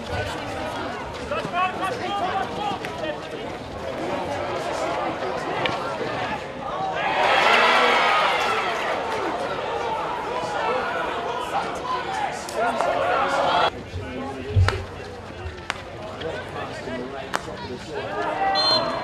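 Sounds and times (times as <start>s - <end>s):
players shouting: 0.2s - 13.7s.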